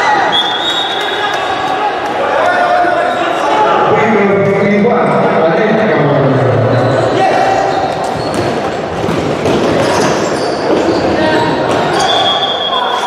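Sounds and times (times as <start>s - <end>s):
voices calling in a hall: 0.0s - 13.0s.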